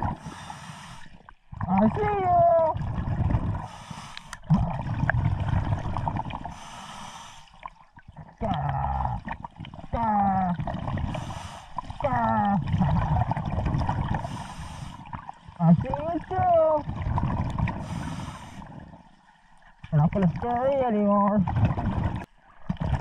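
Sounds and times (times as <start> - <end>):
exhaled bubbles rumbling: 0.0 - 0.5, 1.1 - 6.8, 7.5 - 23.0
regulator hissing inhalations: 0.2 - 1.2, 3.7 - 4.4, 6.6 - 7.5, 17.8 - 18.7.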